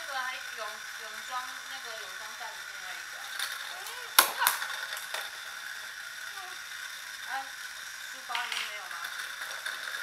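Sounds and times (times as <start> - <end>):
plastic spinning tops clashing: 0.0 - 10.0.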